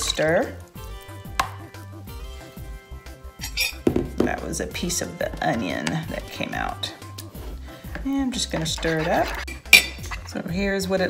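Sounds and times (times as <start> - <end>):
glass cup knocking plastic bowl: 3.8 - 4.4.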